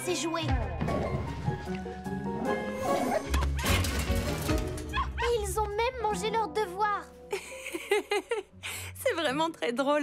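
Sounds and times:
background music: 0.0 - 10.0
cartoon puppies yipping and barking: 4.8 - 5.5.

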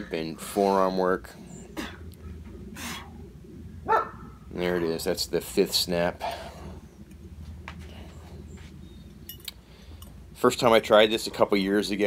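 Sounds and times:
man breathing effortfully: 6.2 - 6.9.

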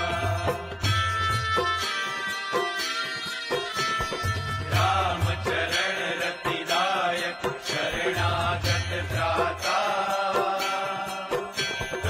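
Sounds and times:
sharp percussion strikes: 0.0 - 12.0
mantra chanting over music: 4.7 - 12.0.

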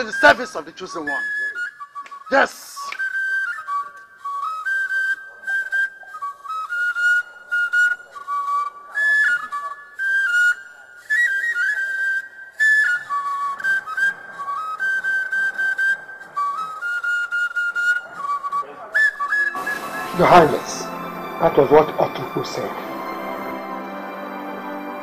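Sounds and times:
solo flute melody: 0.0 - 25.0.

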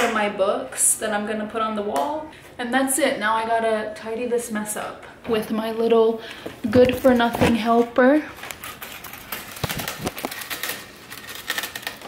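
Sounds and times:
cardboard and styrofoam rustling: 7.0 - 12.0.

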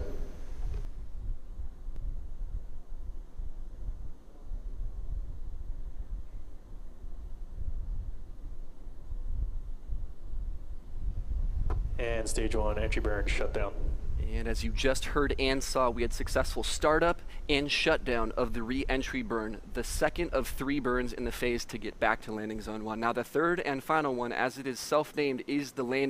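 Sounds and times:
rocket engines rumbling: 11.9 - 24.2.

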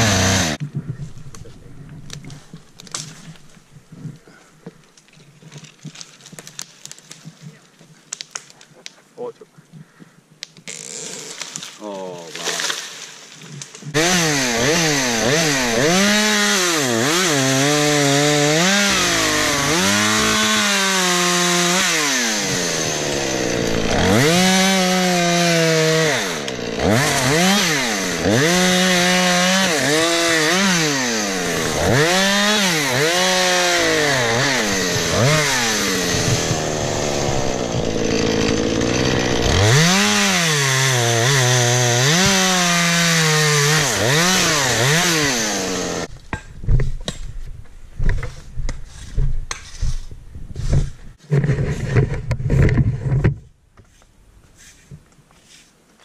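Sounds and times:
chainsaw revving and cutting wood: 0.0 - 0.6, 13.9 - 46.1.

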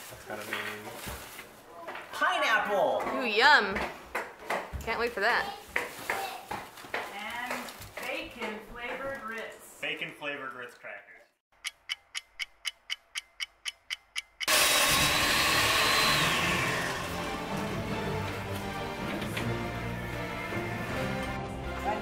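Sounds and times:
clock ticking: 11.5 - 14.8
background music: 15.2 - 22.0.

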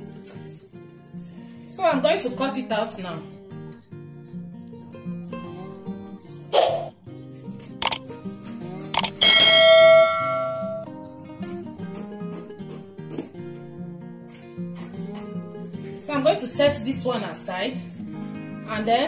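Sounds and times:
guitar music: 0.0 - 19.0
clicks: 7.8 - 8.1, 9.0 - 9.2
bell-like notification ding: 9.1 - 10.9.

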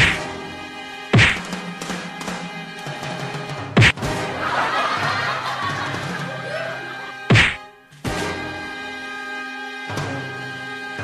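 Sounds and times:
punch sound effects: 0.0 - 0.3, 1.2 - 1.5, 3.8 - 4.1, 7.3 - 7.6
background music: 0.0 - 11.0.

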